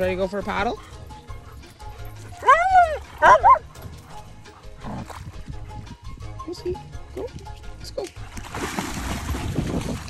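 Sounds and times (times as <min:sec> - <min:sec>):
dog yelping: 0:02.3 - 0:03.7
dog yipping: 0:02.3 - 0:04.2.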